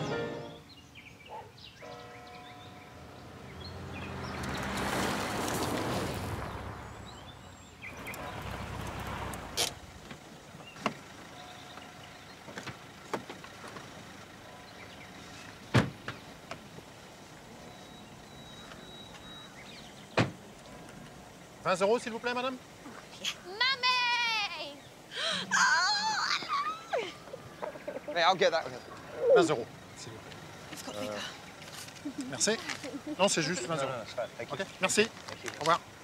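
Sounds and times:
car pulling up: 3.0s - 23.1s, 24.9s - 36.0s.

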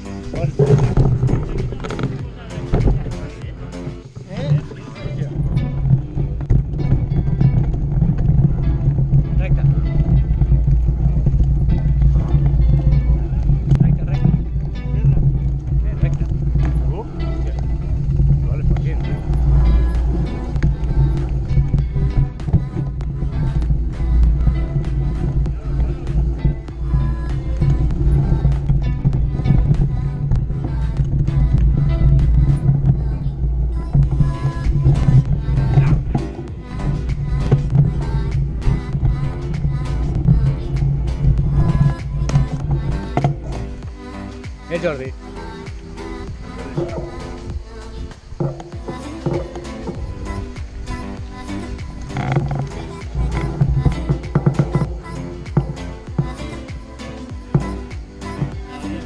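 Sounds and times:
background music: 0.0s - 59.0s
person singing: 18.9s - 59.0s.

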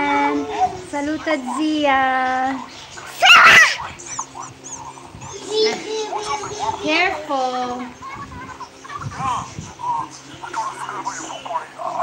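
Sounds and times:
young child vocalising: 3.1s - 3.9s
child's high rising cry: 3.2s - 3.8s.

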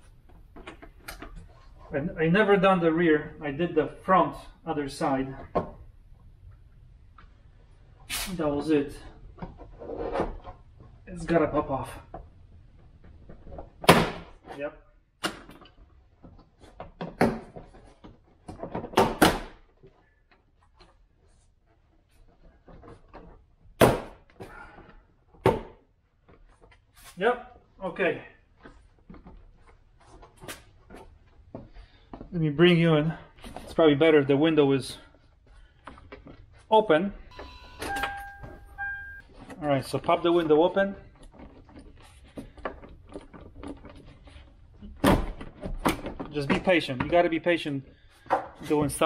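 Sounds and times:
car door warning chime beeping: 37.3s - 39.2s.

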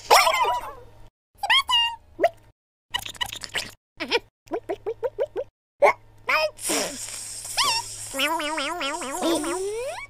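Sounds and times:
hiss of spurting water: 6.6s - 8.3s.

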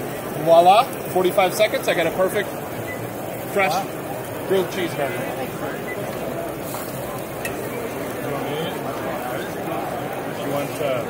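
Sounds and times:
crowd babble: 0.0s - 11.0s.

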